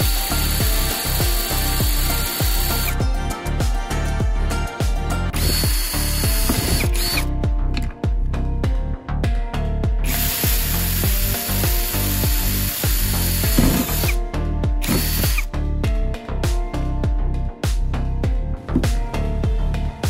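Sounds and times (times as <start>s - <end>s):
cordless drill boring plastic: 0.0s - 3.0s, 5.4s - 7.3s, 10.0s - 14.2s, 14.8s - 15.5s
background music with beat: 0.0s - 20.0s.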